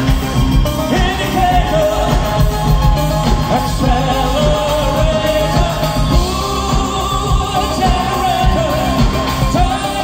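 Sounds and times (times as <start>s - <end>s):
guitars: 0.0s - 10.0s
keyboards: 0.0s - 10.0s
steady drum beat: 0.0s - 10.0s
man singing into a microphone: 0.8s - 10.0s.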